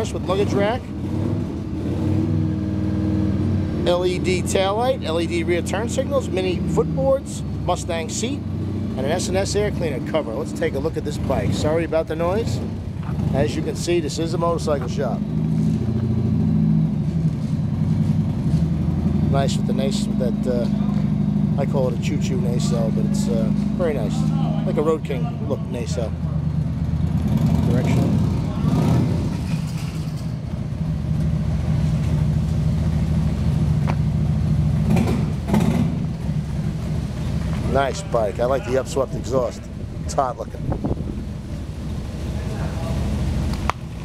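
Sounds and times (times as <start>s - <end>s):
engine idling: 3.9s - 44.0s.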